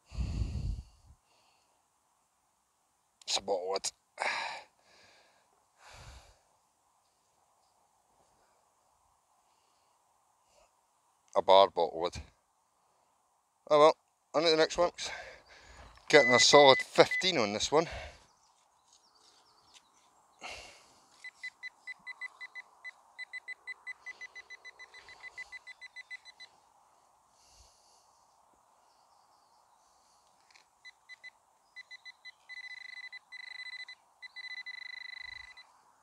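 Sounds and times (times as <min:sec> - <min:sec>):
metal detector beeping: 0:16.1 - 0:17.4, 0:21.1 - 0:26.6, 0:30.8 - 0:35.8.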